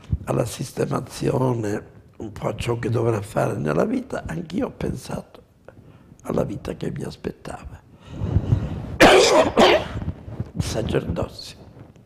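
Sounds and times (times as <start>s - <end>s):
man coughing harshly: 9.0s - 10.0s.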